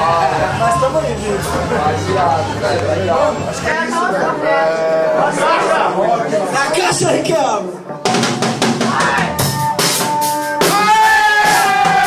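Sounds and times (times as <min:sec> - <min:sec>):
drum kit: 0:06.9 - 0:12.0.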